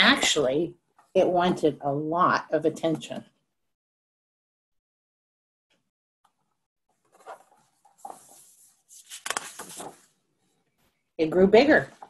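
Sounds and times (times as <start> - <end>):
paper pages rustling: 7.0 - 10.2.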